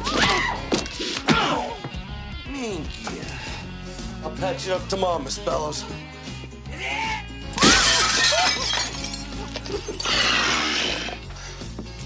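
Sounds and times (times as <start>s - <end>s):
film music score: 0.0s - 7.6s
glass window shattering: 7.6s - 11.2s.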